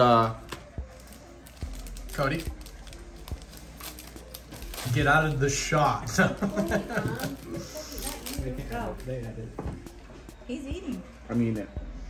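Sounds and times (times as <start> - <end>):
foil pack tearing and crinkling: 1.0 - 5.5, 7.2 - 9.0.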